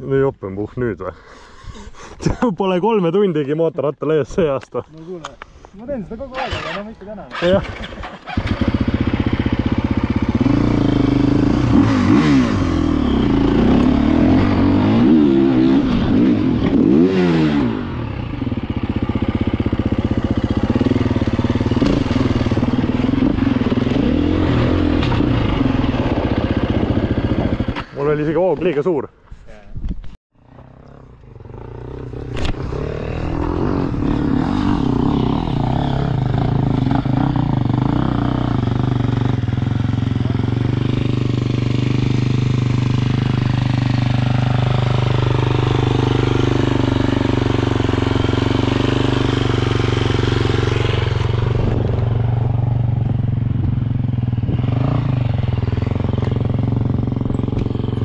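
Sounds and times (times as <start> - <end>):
dirt bike engine revving: 6.3 - 27.9, 30.6 - 58.0.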